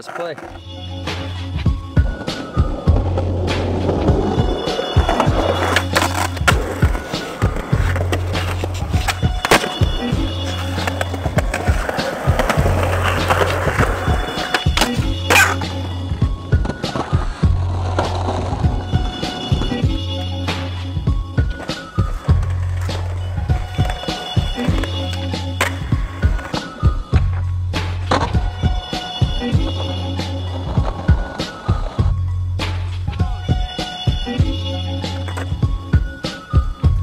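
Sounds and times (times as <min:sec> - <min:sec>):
skateboard wheels rolling on concrete: 0:00.0 - 0:37.0
skateboard sliding on ledge: 0:02.0 - 0:20.7
skateboard pops and landings: 0:05.0 - 0:15.7.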